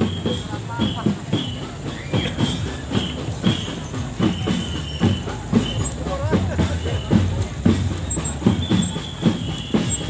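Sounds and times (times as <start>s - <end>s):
distant marching drums: 0.0s - 10.0s.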